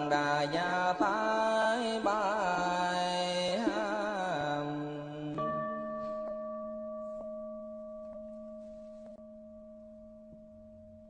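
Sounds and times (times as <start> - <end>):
person chanting: 0.0 - 6.2.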